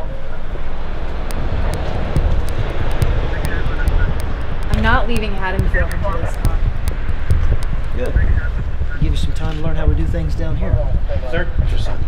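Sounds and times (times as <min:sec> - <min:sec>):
low outdoor rumble: 0:00.0 - 0:12.0
person speaking: 0:03.0 - 0:06.8.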